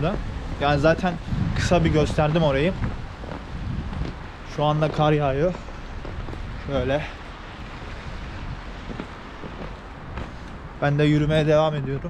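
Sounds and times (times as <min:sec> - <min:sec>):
wind buffeting microphone: 0:00.0 - 0:12.0
footsteps in snow: 0:01.2 - 0:10.9.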